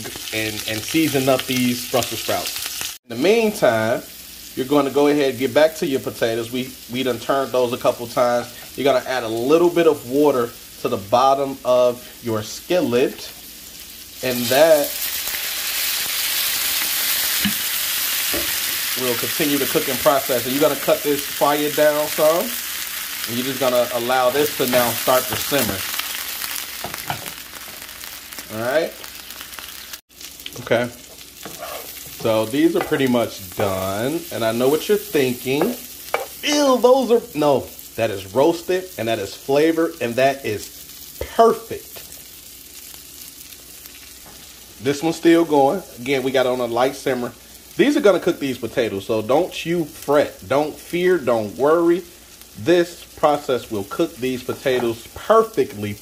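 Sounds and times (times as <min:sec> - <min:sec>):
water sizzling in hot oil: 0:00.0 - 0:56.0.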